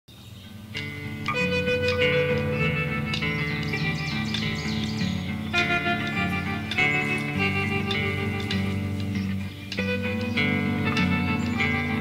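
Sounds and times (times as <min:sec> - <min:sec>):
plucked notes over low drone: 0:00.6 - 0:12.0.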